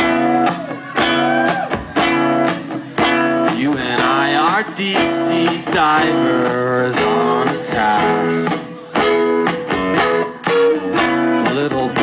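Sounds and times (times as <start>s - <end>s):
steady drum beat: 0.0s - 12.0s
strummed electric guitar chords: 0.0s - 12.0s.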